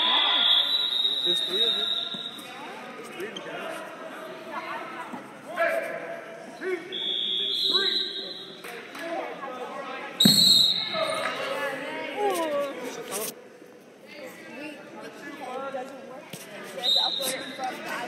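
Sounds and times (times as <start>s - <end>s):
referee's whistle blast: 0.0s - 2.5s, 6.9s - 8.6s, 10.2s - 11.1s
high whistle-like tone: 0.0s - 2.6s, 10.2s - 11.0s
thump: 10.2s - 10.6s.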